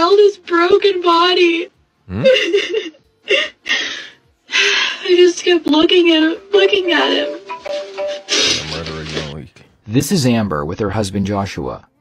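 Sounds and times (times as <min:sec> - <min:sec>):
woman sobbing: 0:02.1 - 0:05.3.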